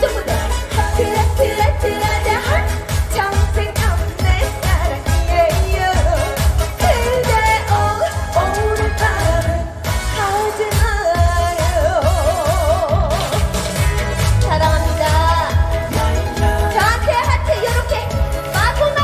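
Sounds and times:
woman singing into microphone: 0.0 - 13.5, 14.3 - 19.0
pounding bass beat: 10.8 - 19.0.

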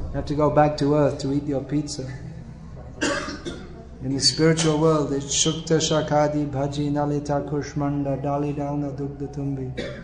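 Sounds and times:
low steady hum: 0.0 - 10.0
person coughing: 3.0 - 3.7, 9.8 - 10.0.

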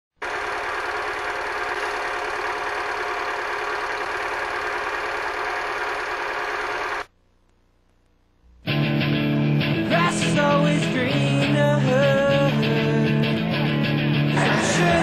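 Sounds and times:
dense mechanical clatter: 0.2 - 7.1.

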